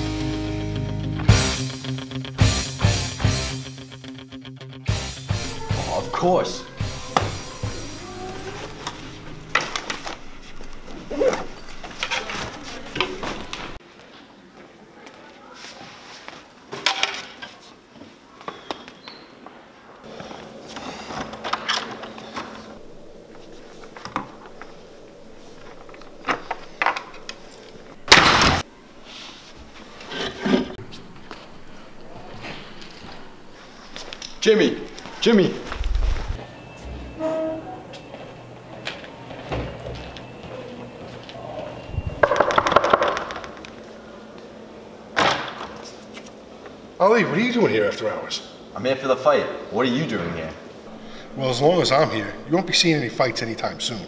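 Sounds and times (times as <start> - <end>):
chair knocking: 6.8 - 10.0.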